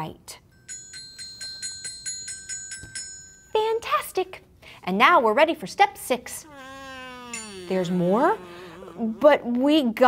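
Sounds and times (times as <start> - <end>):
tinkling chimes: 0.5 - 3.6.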